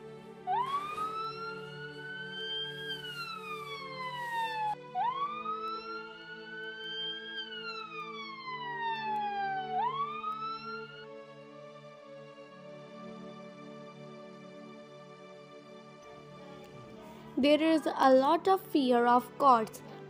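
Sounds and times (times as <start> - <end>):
ambulance siren wailing: 0.0 - 12.0
soft background music: 0.0 - 20.0.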